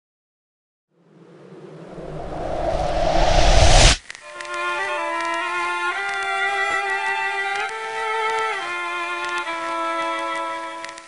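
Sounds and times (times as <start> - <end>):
low rumble: 1.0 - 4.0
riser rush of noise: 1.0 - 4.0.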